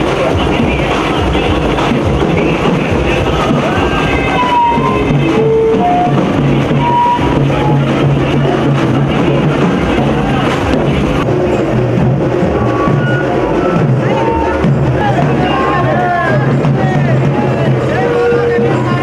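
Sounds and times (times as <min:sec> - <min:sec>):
loud music over horn loudspeaker: 0:00.0 - 0:19.0.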